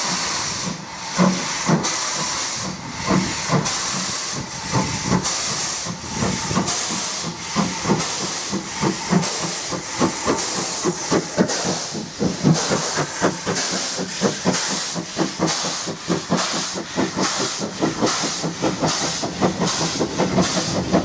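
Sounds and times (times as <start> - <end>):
loud hiss of escaping steam: 0.0 - 21.0
steam locomotive chuffing: 0.0 - 21.0.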